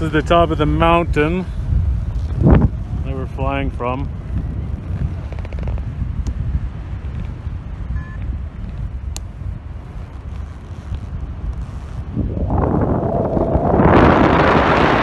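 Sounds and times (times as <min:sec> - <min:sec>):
wind buffeting microphone: 0:00.0 - 0:15.0
faint beep: 0:07.9 - 0:08.2.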